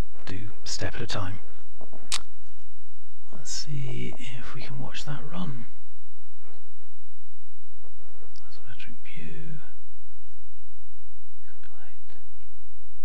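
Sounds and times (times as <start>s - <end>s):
steady low hum: 0.0s - 13.0s
person whispering: 0.2s - 1.5s, 3.2s - 5.8s, 8.0s - 9.8s, 11.4s - 12.5s.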